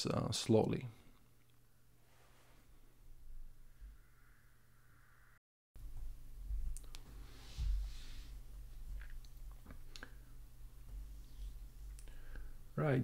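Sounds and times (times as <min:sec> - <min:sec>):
low steady hum: 0:00.0 - 0:13.0
soft rustle: 0:02.0 - 0:03.0, 0:06.6 - 0:09.2.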